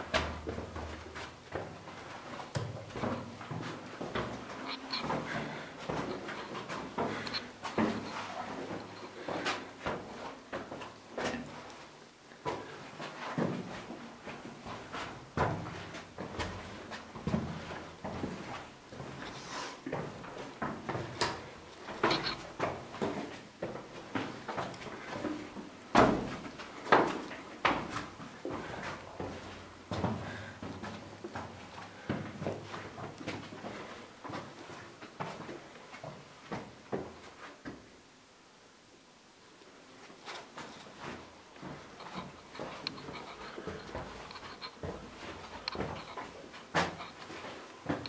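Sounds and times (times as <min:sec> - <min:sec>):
footsteps on stone: 0:00.0 - 0:11.5, 0:14.7 - 0:33.8, 0:40.5 - 0:48.0.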